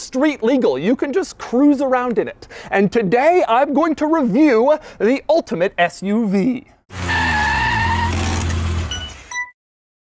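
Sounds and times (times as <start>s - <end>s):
tires skidding: 6.9s - 9.1s
car engine: 6.9s - 9.3s.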